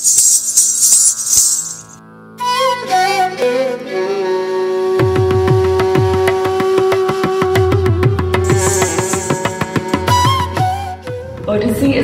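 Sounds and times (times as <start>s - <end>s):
ankle bells jingling: 0.0s - 2.0s, 8.5s - 10.2s.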